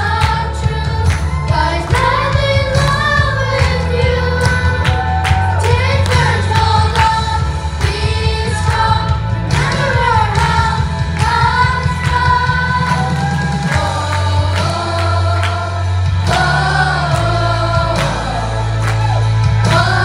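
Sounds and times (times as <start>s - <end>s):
children singing in unison: 0.0s - 18.6s, 19.6s - 20.0s
backing music with bass and drums: 0.0s - 20.0s.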